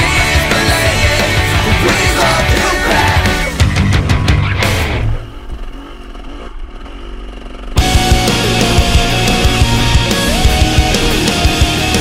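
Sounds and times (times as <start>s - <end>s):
loud rock music: 0.0s - 5.5s, 7.8s - 12.0s
dirt bike engine running: 0.0s - 12.0s.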